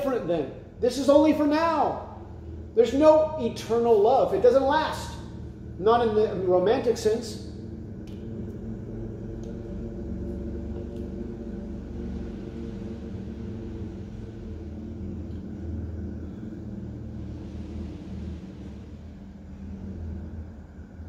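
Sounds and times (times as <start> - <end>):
low held tones: 0.0 - 21.0
low room hum and rumble: 0.0 - 21.0.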